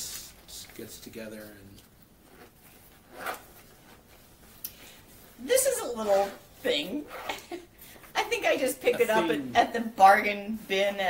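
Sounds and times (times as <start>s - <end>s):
fabric pouch zipping: 2.2s - 4.2s, 6.0s - 7.4s.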